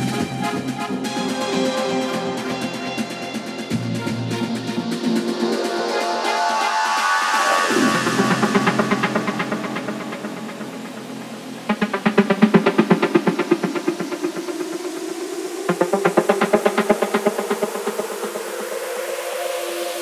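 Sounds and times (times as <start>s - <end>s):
fast pulsing synth line: 0.0s - 20.0s
sustained synth pads: 0.0s - 20.0s.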